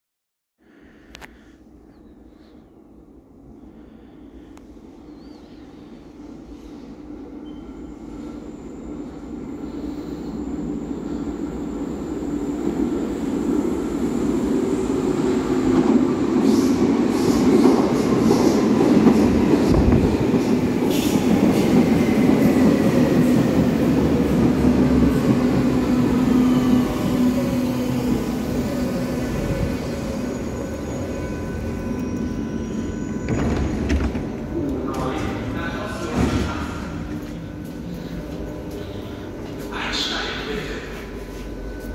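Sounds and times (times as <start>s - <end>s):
train rumble: 8.1s - 41.9s
recorded announcement: 34.6s - 36.9s, 39.6s - 41.2s.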